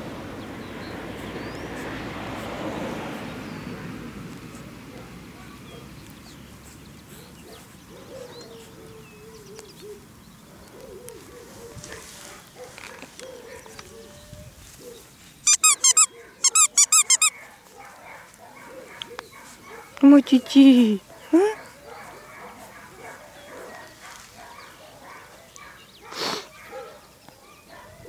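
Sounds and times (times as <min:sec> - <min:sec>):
dog toy squeaking: 0:15.4 - 0:17.4.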